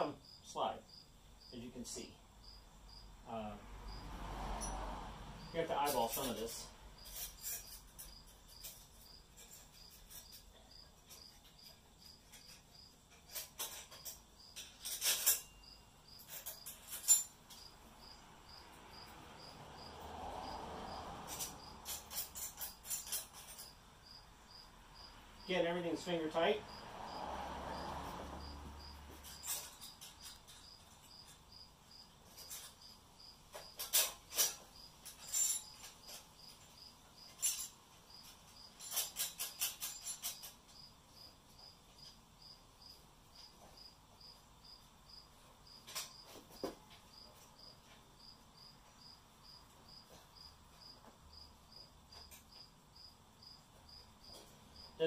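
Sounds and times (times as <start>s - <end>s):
cricket chirping: 0.0s - 55.0s
steel parts clinking: 5.6s - 17.7s, 21.3s - 23.8s, 29.2s - 31.4s, 33.5s - 40.7s.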